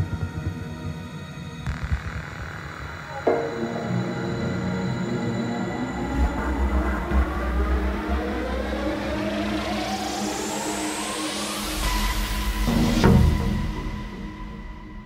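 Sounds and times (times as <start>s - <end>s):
synth sweep rising in pitch: 3.1s - 13.0s.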